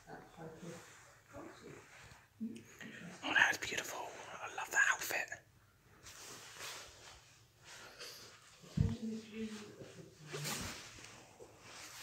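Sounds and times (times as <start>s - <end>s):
person whispering: 2.6s - 5.5s.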